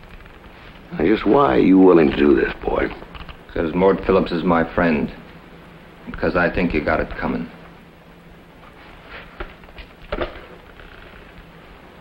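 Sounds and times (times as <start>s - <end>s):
old film soundtrack hiss and crackle: 0.0s - 12.0s.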